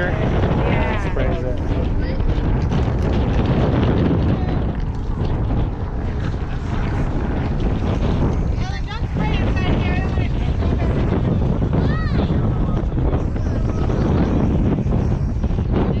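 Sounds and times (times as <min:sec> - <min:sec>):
faint voices of people: 0:00.0 - 0:02.6, 0:08.6 - 0:16.0
strong wind buffeting microphone: 0:00.0 - 0:16.0.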